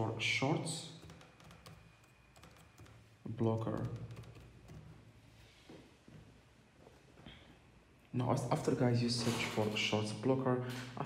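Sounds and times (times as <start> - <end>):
laptop keyboard typing: 0.9 - 5.0.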